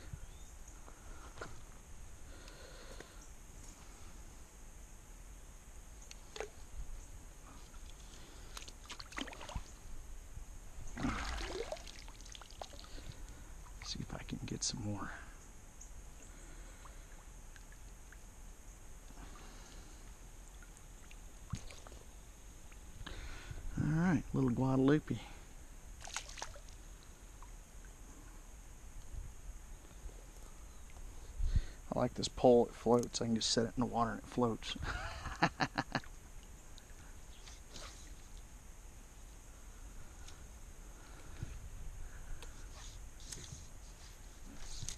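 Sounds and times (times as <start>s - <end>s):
faint ticks: 2.4s - 3.9s, 6.0s - 9.0s, 15.4s - 22.0s, 22.6s - 23.2s, 26.7s - 28.0s, 40.1s - 41.6s, 42.3s - 42.6s
shallow water sloshing and trickling: 6.1s - 6.7s, 7.4s - 10.0s, 10.8s - 14.0s, 19.1s - 22.9s, 25.9s - 28.0s
man laughing: 34.8s - 36.1s.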